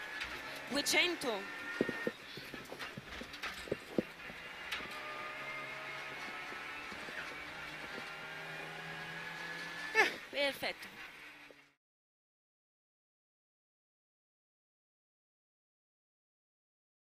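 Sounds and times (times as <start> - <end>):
car engine running steadily: 0.0 - 11.8.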